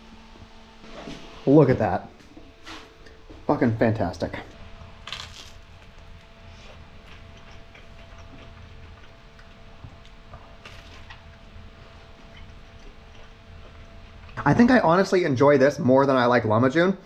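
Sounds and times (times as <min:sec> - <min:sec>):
faint steady hum: 0:00.0 - 0:17.0
biting into crusty bread: 0:05.0 - 0:11.4
chewing with crunches: 0:05.1 - 0:14.6.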